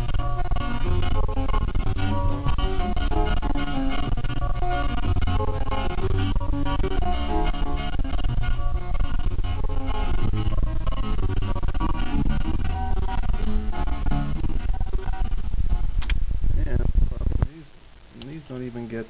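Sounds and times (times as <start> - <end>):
music from stereo speaker: 0.0 - 18.4.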